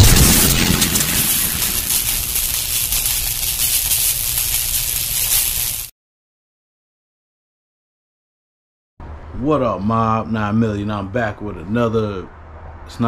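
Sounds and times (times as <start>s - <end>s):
loud hit: 0.0s - 2.7s
hissing rumbling wash: 0.0s - 5.9s.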